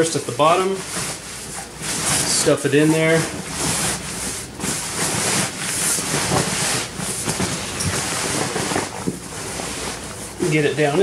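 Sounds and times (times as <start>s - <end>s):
fabric rustling and swishing: 0.0s - 11.0s.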